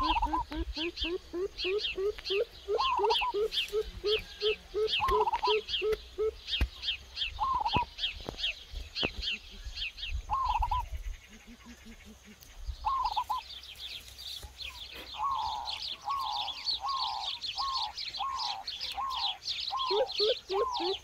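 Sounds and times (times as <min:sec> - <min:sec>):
lower falling bird call: 0:00.0 - 0:10.9, 0:11.6 - 0:21.0
birds chirping: 0:00.0 - 0:21.0.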